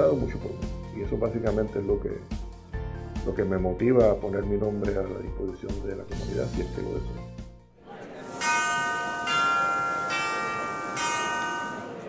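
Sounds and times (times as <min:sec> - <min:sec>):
bell-like chime chords: 0:08.3 - 0:12.0.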